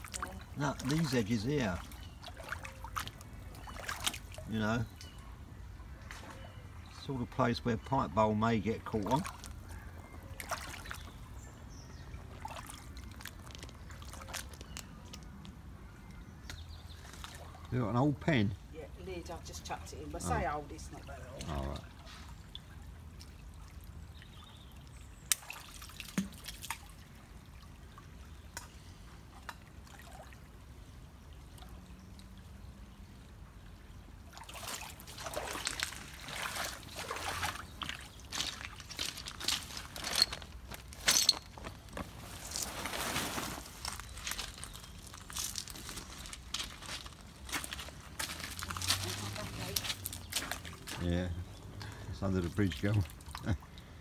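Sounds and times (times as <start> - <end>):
rubber boots wading: 0.0 - 4.5, 9.0 - 14.7, 34.3 - 51.1
river water splashing: 0.0 - 5.2, 8.9 - 14.6, 20.0 - 54.0
hand rummaging through gravel: 38.3 - 49.2.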